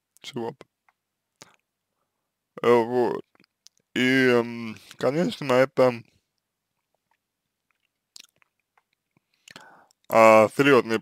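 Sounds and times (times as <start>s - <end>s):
faint mouth clicks: 7.1s - 10.0s.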